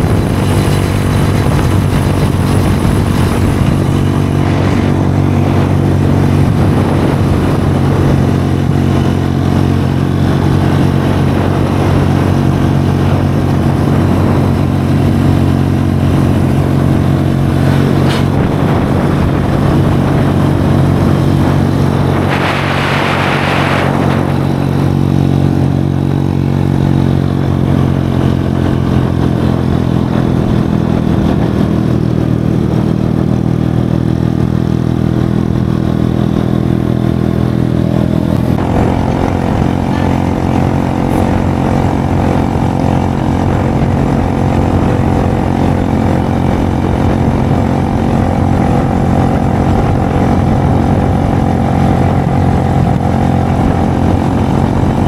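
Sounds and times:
motorcycle engine running: 0.0 - 55.0
road and wind noise: 0.0 - 55.0.

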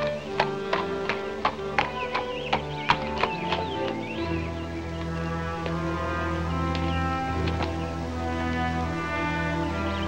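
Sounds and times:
film score music: 0.0 - 10.0
horse hooves clip-clopping: 0.0 - 10.0.

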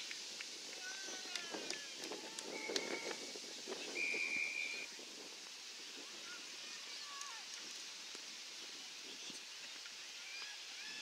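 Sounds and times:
whistle blast: 4.0 - 4.9.

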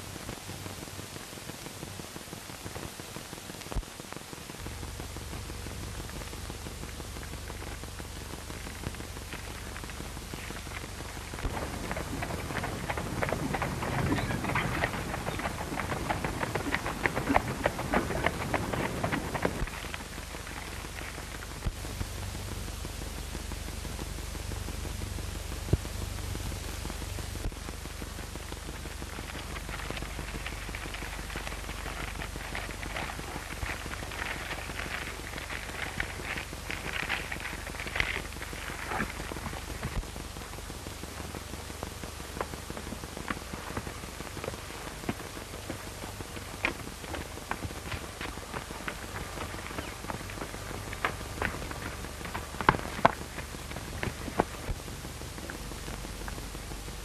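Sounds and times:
film soundtrack hiss and crackle: 0.0 - 57.0.

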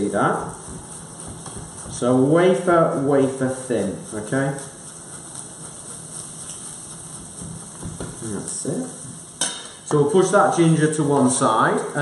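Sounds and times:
fish sizzling in a pan: 0.0 - 12.0.

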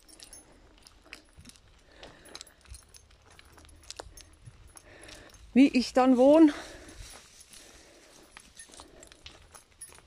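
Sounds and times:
small clicks and rustles: 0.0 - 5.5, 6.8 - 10.0.

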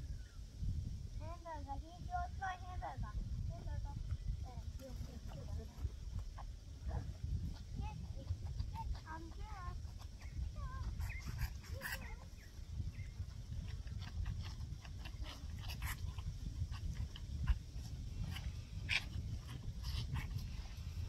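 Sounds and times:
wind on microphone: 0.0 - 21.0
calves suckling from bottles: 4.1 - 21.0.

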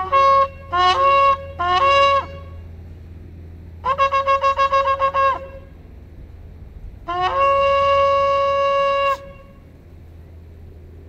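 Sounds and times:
shofar blasts: 0.0 - 2.6, 3.8 - 5.8, 7.0 - 9.7.

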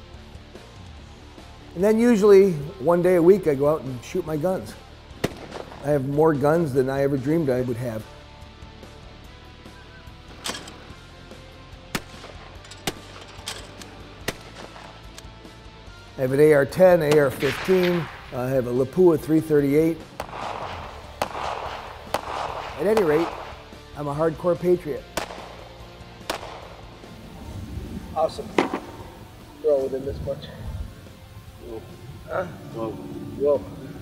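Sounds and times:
background music: 0.0 - 34.0
sharp gunshots: 5.2 - 6.1, 11.9 - 15.2, 17.0 - 19.2, 20.0 - 24.1, 25.0 - 27.2, 28.5 - 29.2.

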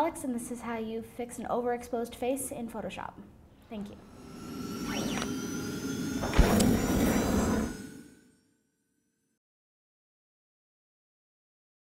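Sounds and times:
whoosh: 3.8 - 8.4
sharp hit: 3.9 - 8.4.

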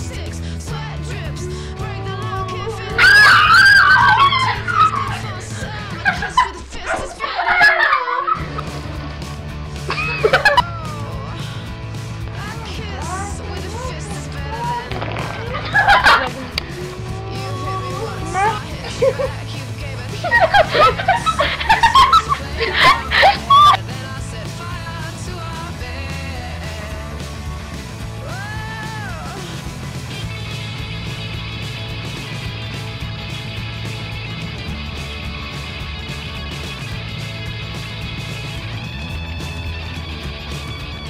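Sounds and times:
background music: 0.0 - 41.0
girl giggling and laughing: 4.0 - 8.8, 9.9 - 11.2, 15.4 - 23.8.

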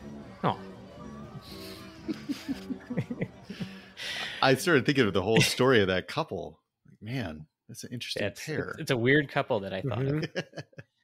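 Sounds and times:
soft background music: 0.0 - 10.6
person laughing: 2.0 - 3.6, 9.8 - 11.0.

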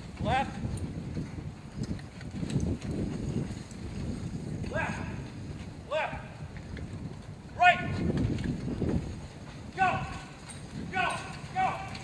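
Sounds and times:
hooves trotting on dirt: 0.0 - 12.0.

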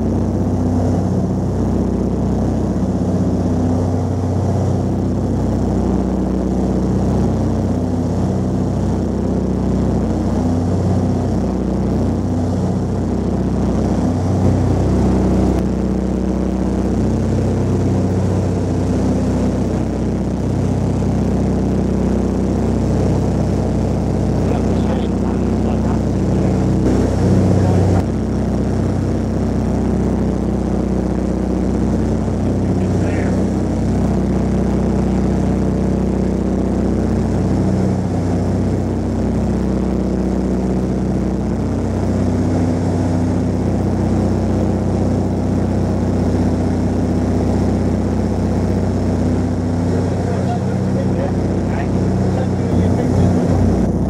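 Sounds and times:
aircraft engines and propellers droning: 0.0 - 54.0.

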